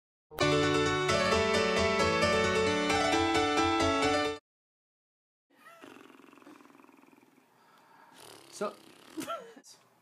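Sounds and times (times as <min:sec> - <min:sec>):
person stifling a laugh: 0:09.2 - 0:09.7.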